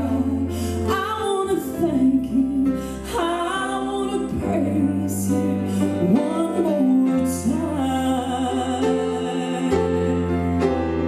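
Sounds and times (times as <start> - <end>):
woman singing: 0.0 - 10.8.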